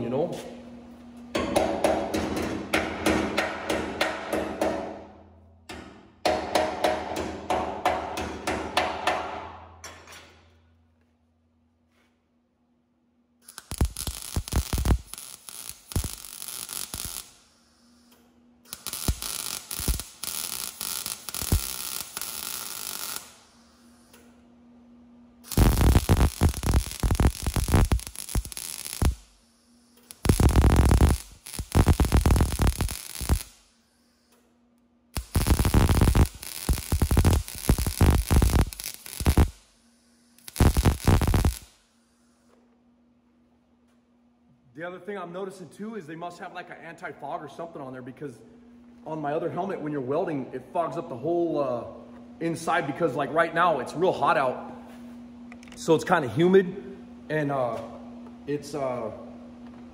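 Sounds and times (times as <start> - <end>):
low steady hum: 0.0 - 59.9
welder arc crackling: 13.4 - 24.3, 25.4 - 33.7, 35.1 - 41.9.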